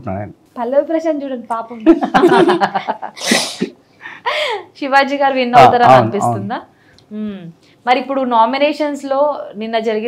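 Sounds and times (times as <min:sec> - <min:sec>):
children laughing: 0:02.0 - 0:03.5.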